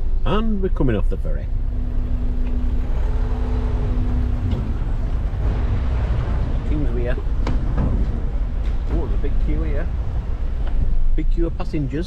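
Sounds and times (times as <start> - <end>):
car engine: 0.0 - 12.0
road rumble: 0.0 - 12.0.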